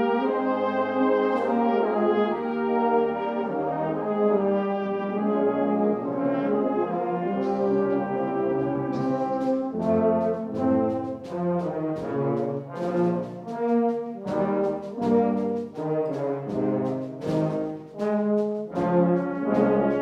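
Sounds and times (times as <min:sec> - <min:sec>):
brass instruments playing chords: 0:00.0 - 0:20.0.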